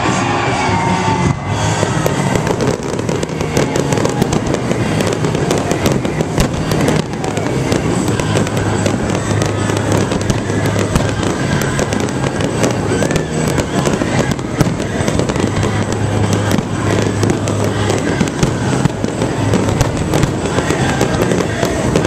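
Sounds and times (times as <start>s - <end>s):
fireworks bursting: 0.0s - 22.0s
fireworks crackling: 0.0s - 22.0s.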